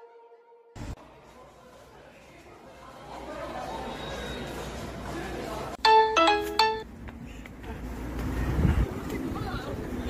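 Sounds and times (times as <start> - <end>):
wind rumble on microphone: 8.2 - 10.0.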